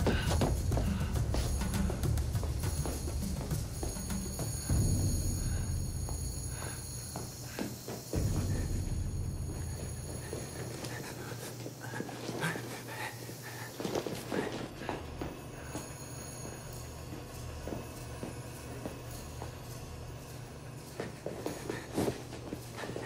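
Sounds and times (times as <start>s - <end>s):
low rumbling music score: 0.0s - 7.5s, 8.2s - 11.3s.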